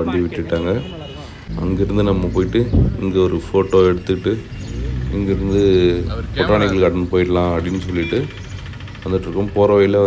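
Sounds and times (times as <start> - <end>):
road traffic engine hum: 0.0 - 10.0.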